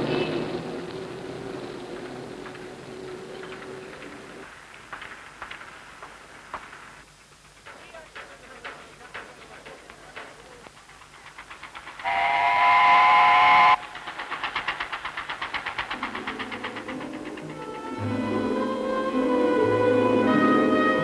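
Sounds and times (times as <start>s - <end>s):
boat engine chugging: 7.5s - 19.5s
steam whistle blast: 12.0s - 13.8s
orchestral music: 16.0s - 21.0s.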